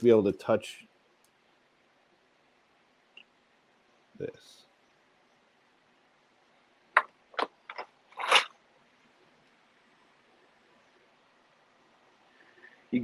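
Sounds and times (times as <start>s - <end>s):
brief rustle: 7.4s - 8.6s.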